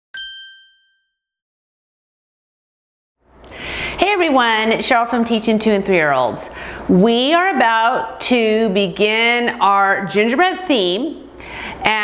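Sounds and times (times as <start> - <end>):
bell-like ding: 0.1 - 1.4.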